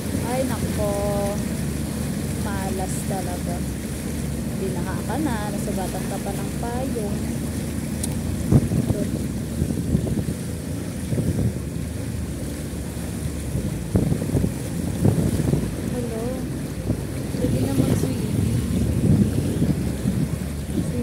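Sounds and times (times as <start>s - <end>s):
floodwater rushing and splashing: 0.0s - 21.0s.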